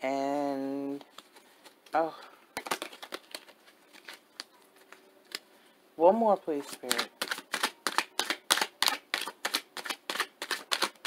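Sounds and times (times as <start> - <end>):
cards being shuffled: 0.9 - 5.5, 6.5 - 11.0.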